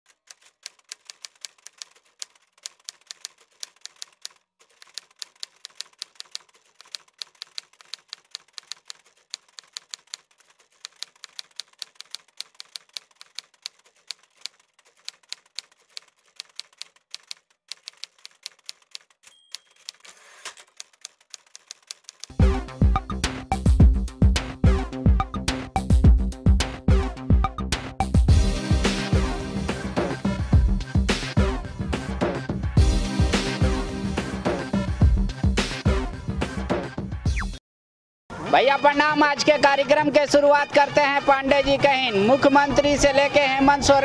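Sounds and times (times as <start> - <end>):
typewriter key clicks: 0.1 - 22.3.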